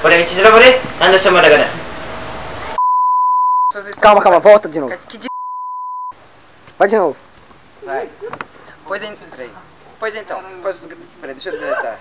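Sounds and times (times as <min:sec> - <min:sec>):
censor bleep: 0:02.8 - 0:03.8, 0:05.3 - 0:06.2.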